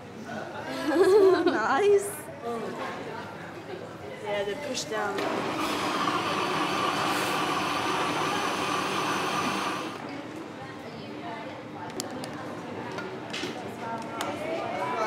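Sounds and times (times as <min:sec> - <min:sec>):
electric blender running: 0:05.2 - 0:10.0.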